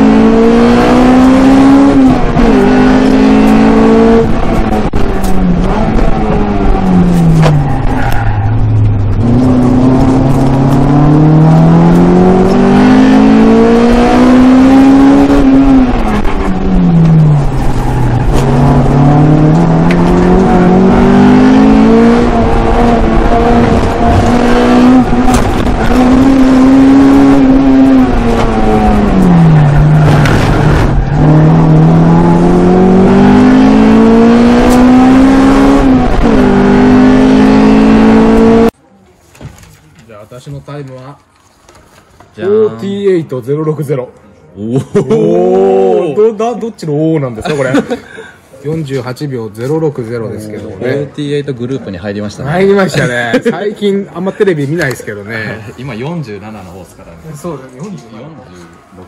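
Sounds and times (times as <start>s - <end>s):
car engine revving from inside cabin: 9.2s - 16.0s, 18.4s - 38.8s.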